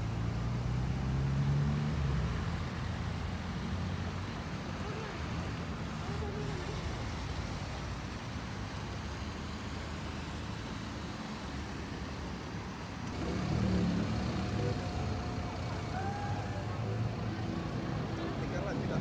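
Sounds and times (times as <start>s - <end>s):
road traffic passing: 0.0s - 19.0s
murmur of voices: 13.2s - 19.0s.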